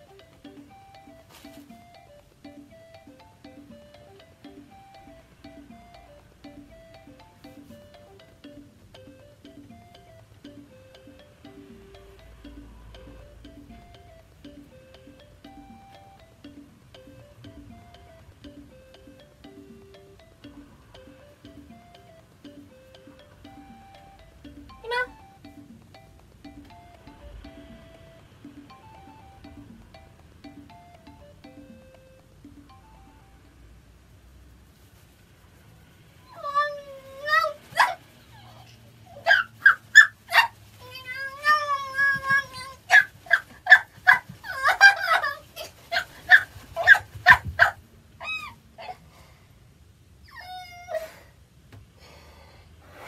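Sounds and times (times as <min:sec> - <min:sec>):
plucked background music: 0:00.0 - 0:34.0
woman squealing and yelping: 0:36.3 - 0:49.0.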